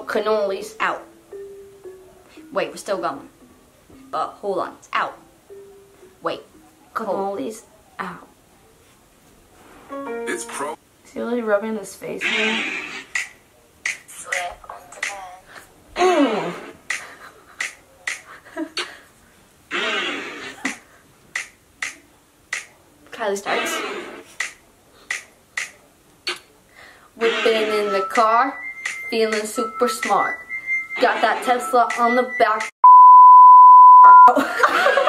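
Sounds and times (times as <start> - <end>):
finger snaps: 21.4 - 22.7, 24.4 - 26.5
censor bleep: 29.6 - 34.4
people laughing: 34.4 - 35.0.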